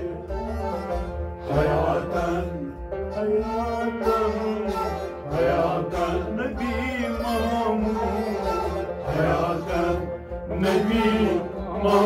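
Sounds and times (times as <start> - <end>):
man singing: 0.0 - 0.5, 1.5 - 12.0
harmonium: 0.0 - 12.0
low beat: 0.0 - 12.0
bowed sarangi: 2.9 - 5.8, 7.0 - 9.2.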